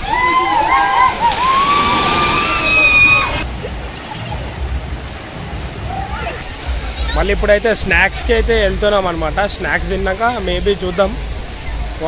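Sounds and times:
people shouting: 0:00.0 - 0:03.4
water running and splashing: 0:00.0 - 0:12.0.

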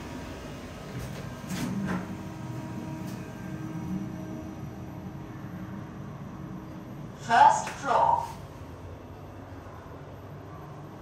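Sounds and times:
elevator ride hum: 0:00.0 - 0:11.0.

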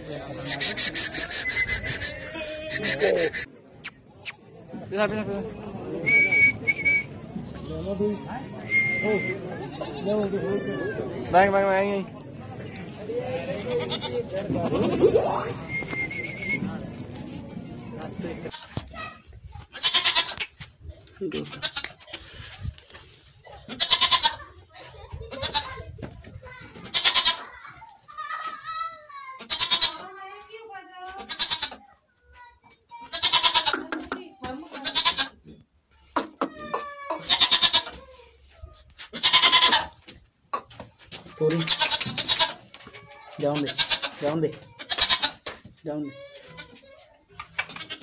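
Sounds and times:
goats bleating: 0:13.5 - 0:15.0, 0:19.7 - 0:20.4, 0:23.7 - 0:24.5, 0:26.8 - 0:27.6, 0:29.4 - 0:30.0, 0:31.2 - 0:31.8, 0:33.0 - 0:34.0, 0:34.7 - 0:35.4, 0:36.7 - 0:38.0, 0:39.1 - 0:40.0, 0:41.5 - 0:42.7, 0:43.6 - 0:44.2, 0:44.8 - 0:45.4.

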